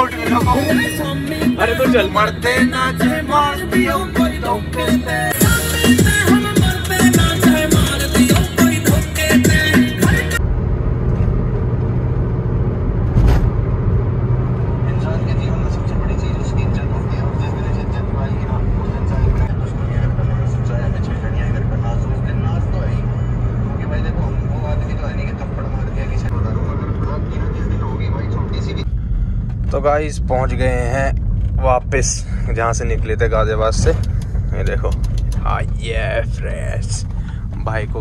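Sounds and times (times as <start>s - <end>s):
car engine and tyre rumble: 0.0s - 5.4s, 10.4s - 38.0s
music: 0.0s - 10.4s.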